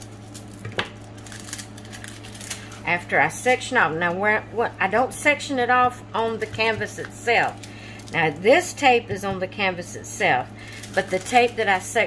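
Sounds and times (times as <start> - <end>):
plastic film rustling: 0.0 - 4.2, 6.2 - 8.8, 10.4 - 12.0
steady low hum: 0.0 - 12.0.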